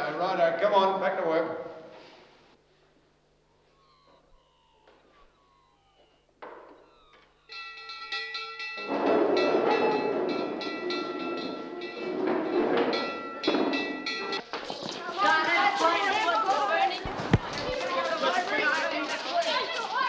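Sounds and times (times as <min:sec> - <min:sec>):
electric school bell ringing: 0:06.8 - 0:14.4
wooden chairs scraping and clattering: 0:08.8 - 0:20.0.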